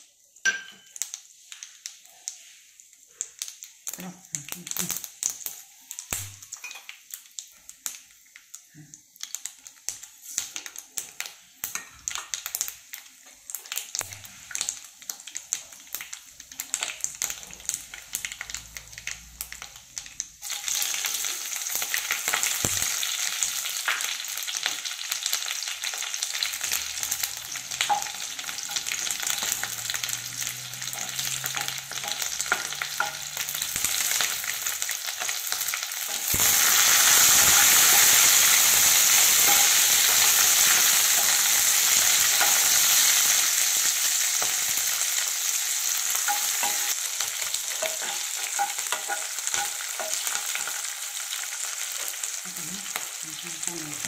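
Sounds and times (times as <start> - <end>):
chillies sizzling in hot oil: 0.0 - 54.0.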